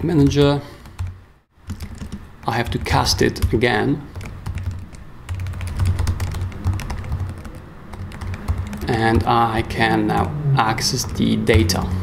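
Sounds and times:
computer keyboard typing: 0:00.8 - 0:09.3.

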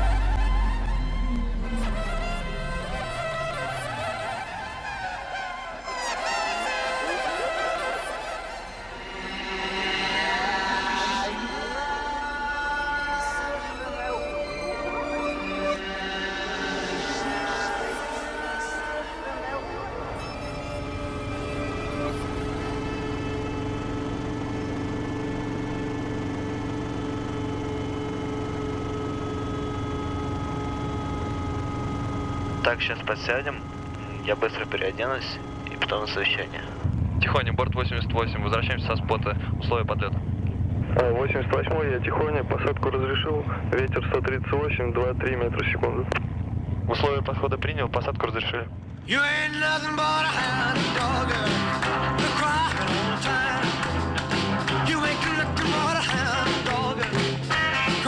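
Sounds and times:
low rumble: 0:00.0 - 0:06.0, 0:16.8 - 0:51.4
drone of held tones: 0:00.0 - 0:56.4
thin buzzing whine: 0:19.4 - 0:42.0.

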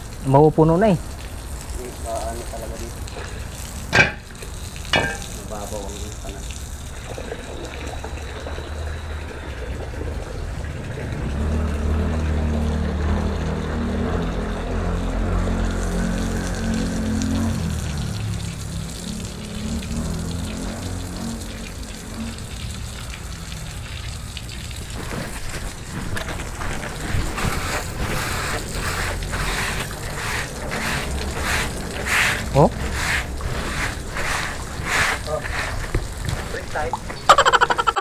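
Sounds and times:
water spray splashing on concrete: 0:00.0 - 0:09.5, 0:10.4 - 0:38.0.

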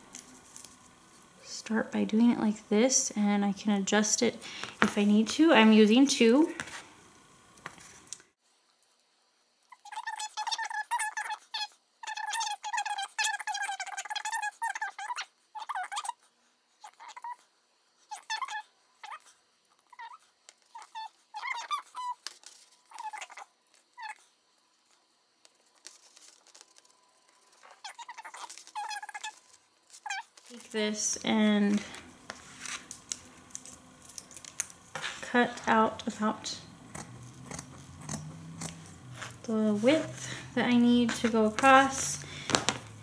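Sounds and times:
scissors snipping felt: 0:36.9 - 0:40.2.

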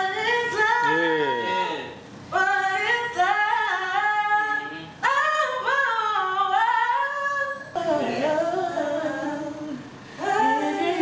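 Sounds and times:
woman singing unaccompanied: 0:00.0 - 0:11.0.

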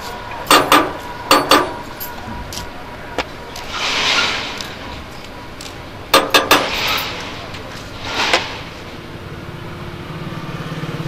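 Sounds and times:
vehicle passing: 0:01.1 - 0:11.0.

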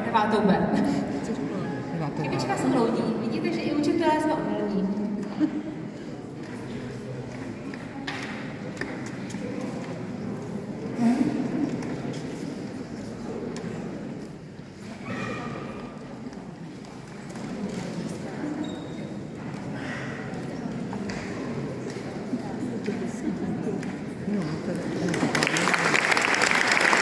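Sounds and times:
crowd chatter in echoing hall: 0:00.0 - 0:27.0.

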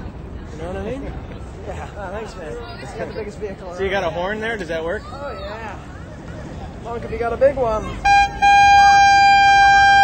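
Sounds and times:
hand-held horn blasts: 0:08.0 - 0:10.0.

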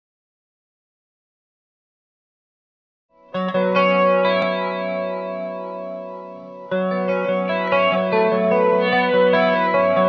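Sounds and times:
flanged electric guitar chords: 0:03.2 - 0:10.0.

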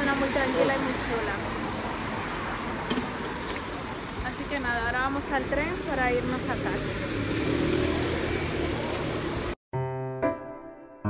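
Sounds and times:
car engines: 0:00.0 - 0:09.6
tyres on wet road: 0:00.0 - 0:09.6.

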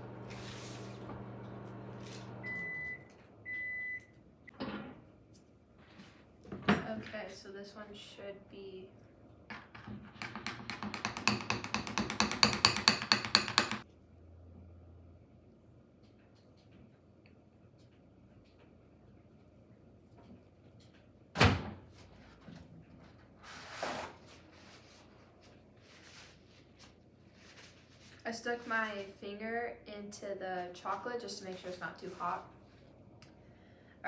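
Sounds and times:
soft rustle: 0:24.4 - 0:29.2.

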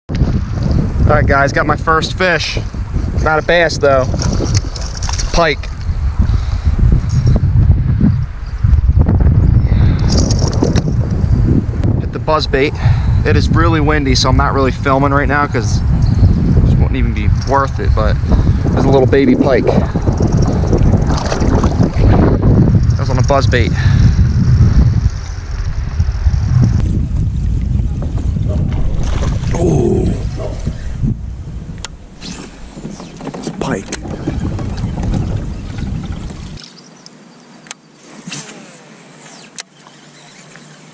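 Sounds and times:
wind buffeting microphone: 0:00.1 - 0:36.6.

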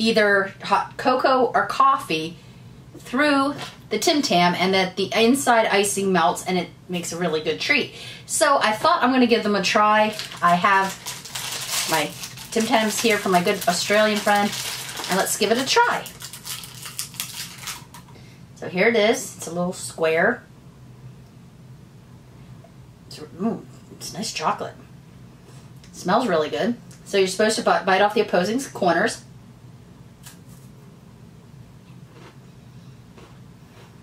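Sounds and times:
steady low hum: 0:00.0 - 0:34.0
plastic packet crinkling: 0:09.9 - 0:18.1
biscuit crunching: 0:10.1 - 0:18.1.

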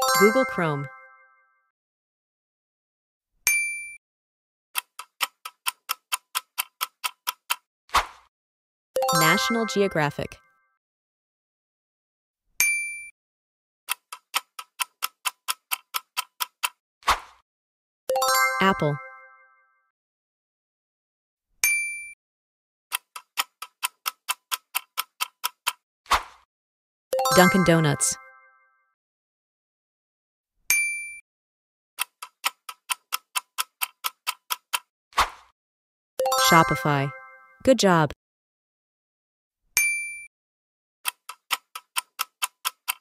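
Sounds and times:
bell-like ding: 0:03.5 - 0:04.0, 0:12.6 - 0:13.1, 0:30.7 - 0:31.2, 0:39.8 - 0:40.3
clock ticking: 0:04.8 - 0:07.6, 0:13.9 - 0:16.8, 0:22.9 - 0:25.8, 0:32.0 - 0:34.9, 0:41.1 - 0:43.0
countdown timer ticking: 0:09.0 - 0:10.4, 0:18.1 - 0:19.2, 0:27.2 - 0:28.3, 0:36.2 - 0:38.2.

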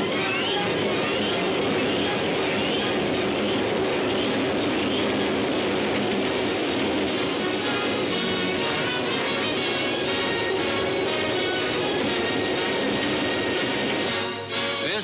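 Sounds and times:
faint music: 0:00.0 - 0:15.0
train rushing rumble: 0:00.0 - 0:15.0.

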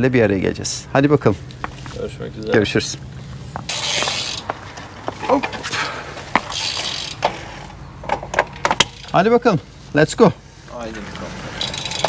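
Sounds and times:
bicycle click: 0:03.6 - 0:04.6, 0:06.3 - 0:09.2, 0:11.2 - 0:12.0
bicycle freewheel ratcheting: 0:03.7 - 0:04.5, 0:06.4 - 0:07.4, 0:08.8 - 0:09.3, 0:11.5 - 0:12.0.

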